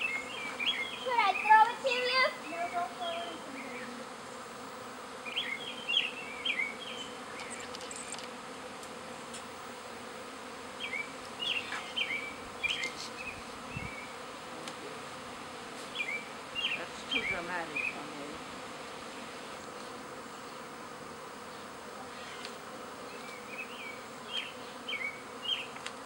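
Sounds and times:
bee swarm buzzing: 0:00.0 - 0:26.0.

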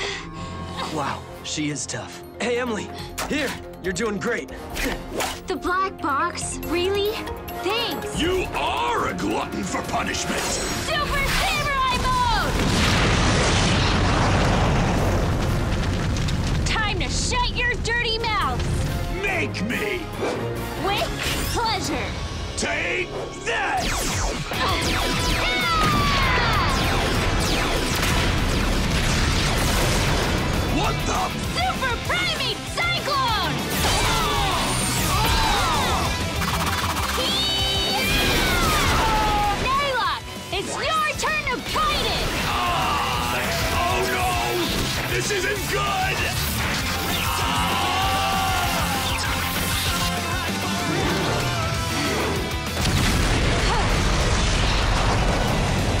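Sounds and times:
background music: 0:00.0 - 0:56.0
explosion with crackling rush: 0:12.0 - 0:19.3, 0:24.0 - 0:31.4, 0:52.8 - 0:56.0.

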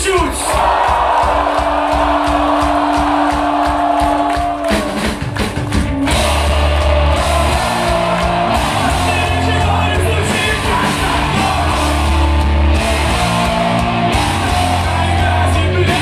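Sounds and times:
drum kit beat: 0:00.0 - 0:16.0
punk rock band playing: 0:00.0 - 0:16.0.

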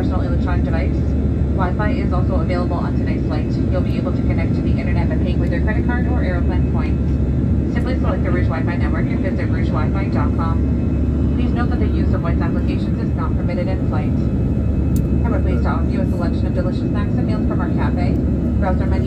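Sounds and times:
jet engines rumbling in cabin: 0:00.0 - 0:19.0.

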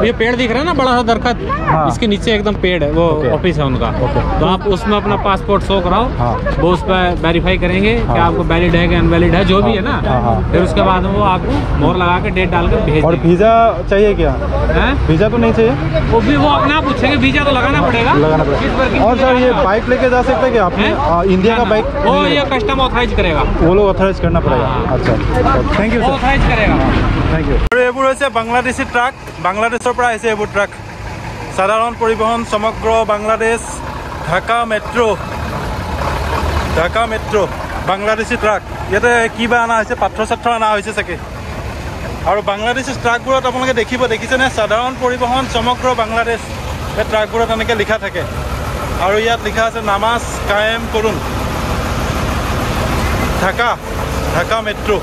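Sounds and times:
diesel truck engine idling: 0:00.0 - 0:55.0.

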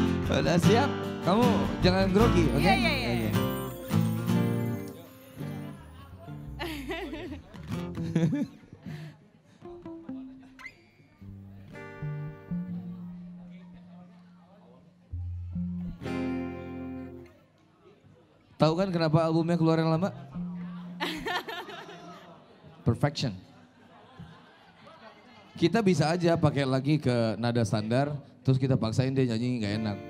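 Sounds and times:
keyboard notes: 0:00.0 - 0:08.1
acoustic guitar chords: 0:00.0 - 0:08.6, 0:11.3 - 0:14.5, 0:15.1 - 0:17.4, 0:20.2 - 0:21.0, 0:29.7 - 0:30.0.

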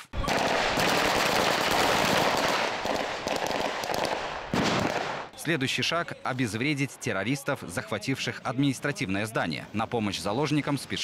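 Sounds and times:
rapid rifle gunfire: 0:00.2 - 0:05.3.

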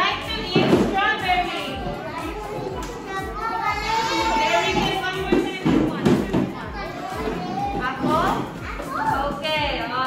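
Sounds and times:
children chattering: 0:01.4 - 0:09.4.

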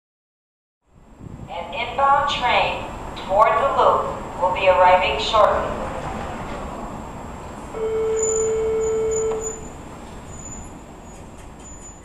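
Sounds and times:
city traffic rumble: 0:00.8 - 0:12.0
long horn blast: 0:07.7 - 0:09.7.

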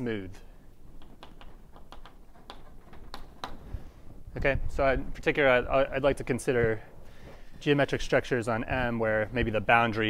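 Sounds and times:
chalk tapping and scraping blackboard: 0:01.0 - 0:03.7.

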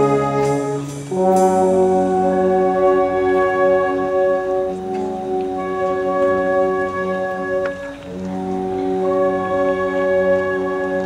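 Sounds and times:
wind band playing chords: 0:00.0 - 0:11.0.

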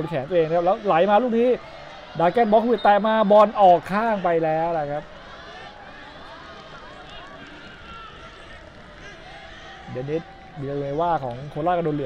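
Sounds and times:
distant shouts: 0:00.0 - 0:12.0.

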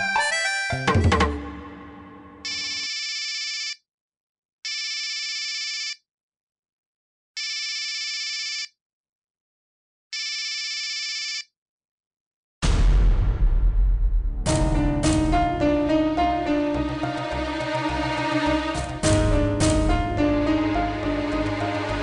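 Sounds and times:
mobile phone ringing: 0:02.4 - 0:03.7.

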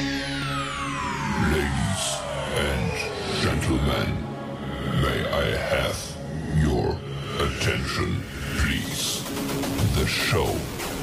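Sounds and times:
aircraft whine gliding down in pitch: 0:00.0 - 0:04.8.

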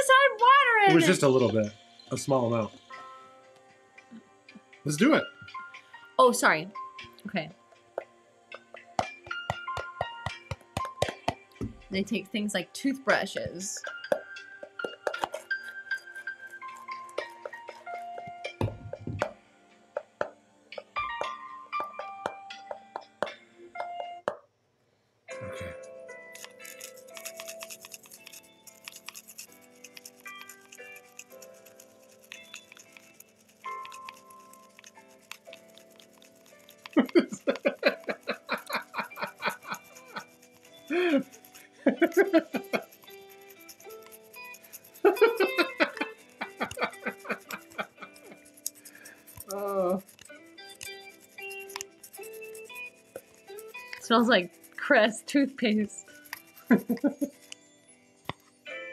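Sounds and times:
background music: 0:00.0 - 0:24.4, 0:25.3 - 0:58.9
toothbrush scrubbing hard object: 0:14.7 - 0:18.6, 0:26.3 - 0:57.6
people laughing: 0:36.9 - 0:40.2, 0:41.8 - 0:42.9, 0:45.0 - 0:48.3, 0:56.7 - 0:57.3.

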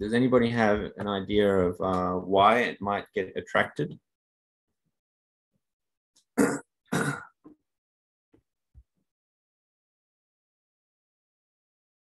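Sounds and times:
person clearing throat: 0:06.4 - 0:07.4.

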